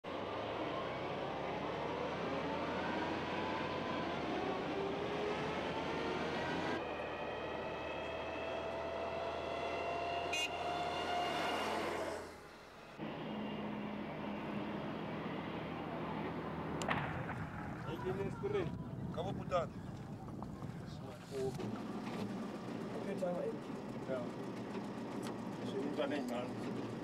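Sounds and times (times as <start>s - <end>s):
military vehicles driving past: 0.0s - 27.0s.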